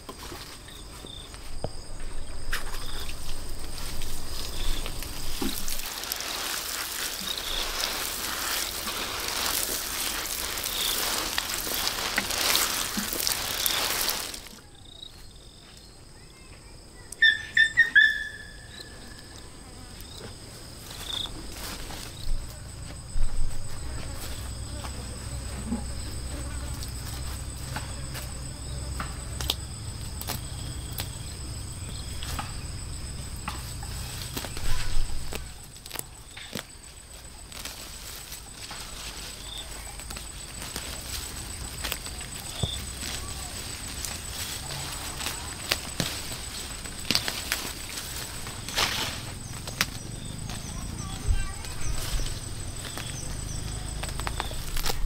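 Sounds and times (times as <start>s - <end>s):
insects trilling: 0.0s - 55.0s.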